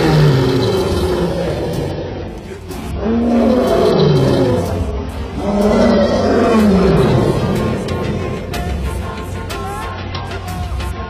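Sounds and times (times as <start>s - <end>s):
lion roaring: 0.0s - 9.0s
music: 0.0s - 11.0s.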